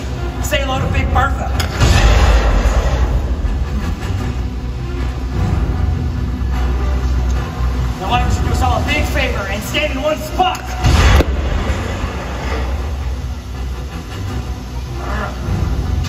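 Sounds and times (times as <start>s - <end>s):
steady low rumble: 0.0s - 16.0s
loud bang: 1.6s - 4.6s, 10.8s - 13.4s.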